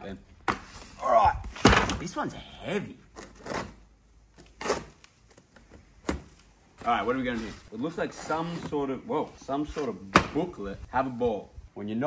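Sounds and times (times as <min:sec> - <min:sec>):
cardboard rustling: 0:04.4 - 0:10.2.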